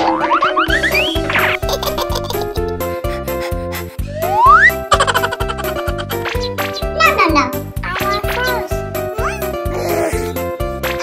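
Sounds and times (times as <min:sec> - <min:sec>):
comic rising and falling notes: 0:00.0 - 0:07.1
cheerful cartoon music: 0:00.0 - 0:11.0.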